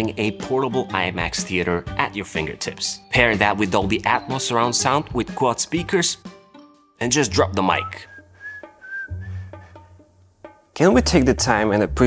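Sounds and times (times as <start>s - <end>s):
thin whistled tone: 7.7s - 9.8s.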